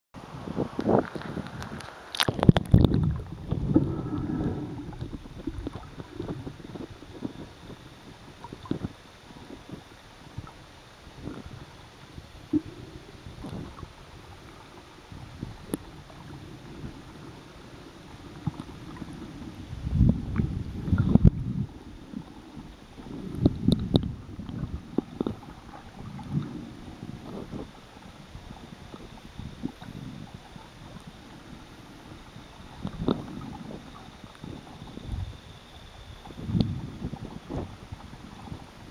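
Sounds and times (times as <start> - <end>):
faint hiss: 0.2 - 38.9
underwater surf sloshing: 0.2 - 38.9.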